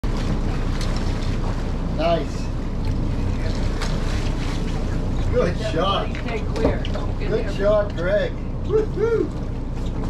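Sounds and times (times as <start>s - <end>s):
boat diesel engines running: 0.0s - 10.0s
water rushing and splashing: 0.0s - 10.0s.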